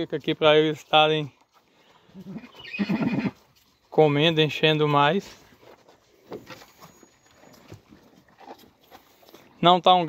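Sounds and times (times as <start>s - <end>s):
cattle chewing and licking: 0.0s - 10.0s.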